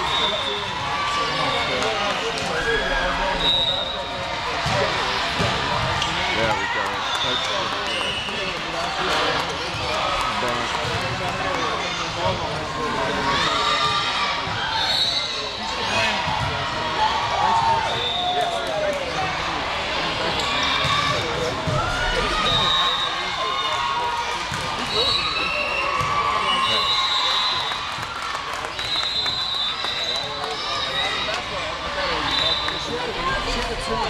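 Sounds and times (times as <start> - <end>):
spectators chattering: 0.0 - 34.0.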